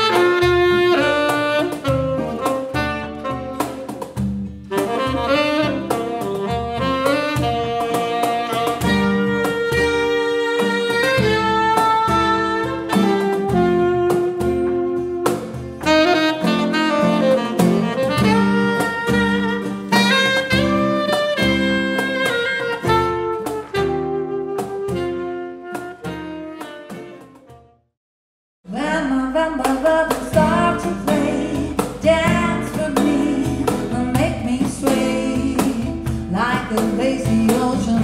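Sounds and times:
cajon beat played by hand: 0.0s - 27.6s, 29.5s - 38.0s
acoustic guitar: 0.0s - 27.8s, 28.7s - 38.0s
saxophone melody: 0.0s - 27.9s, 28.9s - 38.0s.

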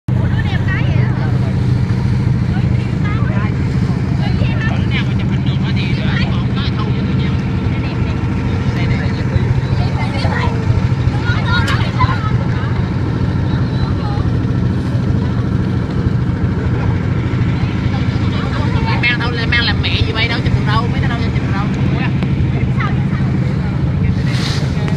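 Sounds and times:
boat engine humming: 0.1s - 24.9s
faint voices: 0.1s - 24.9s.

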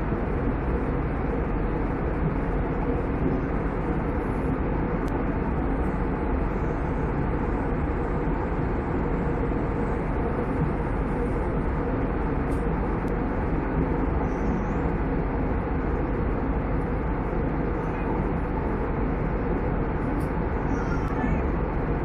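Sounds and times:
airliner cabin engine noise: 0.0s - 22.0s.

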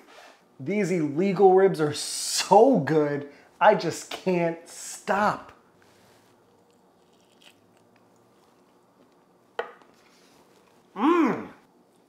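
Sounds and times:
faint chewing: 6.2s - 11.0s, 11.6s - 12.0s.

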